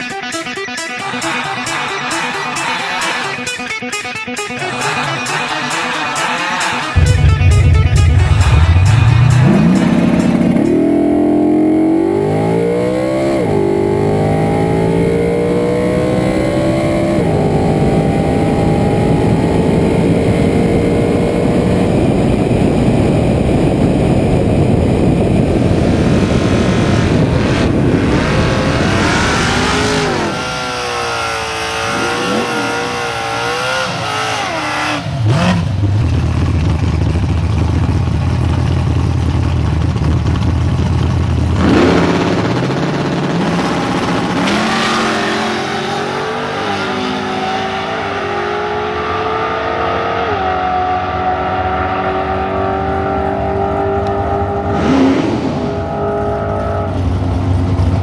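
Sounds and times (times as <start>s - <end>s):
drag car engine revving: 0.7s - 58.0s.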